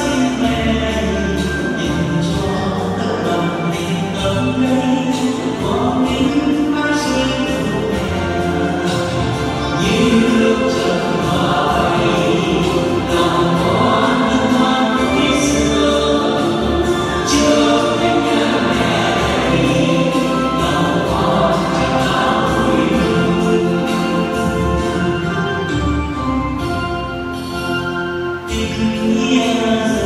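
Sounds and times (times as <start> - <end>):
instrumental accompaniment: 0.0 - 30.0
choir singing a hymn: 8.6 - 25.3.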